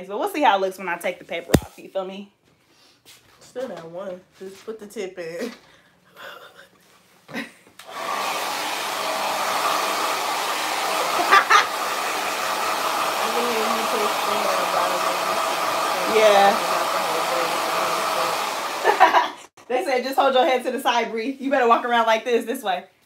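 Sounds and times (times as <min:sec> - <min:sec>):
blow dryer running: 0:07.8 - 0:19.3.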